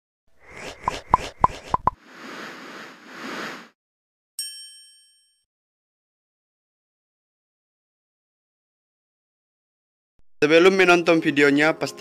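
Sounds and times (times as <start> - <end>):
bell-like ding: 4.4 - 5.5.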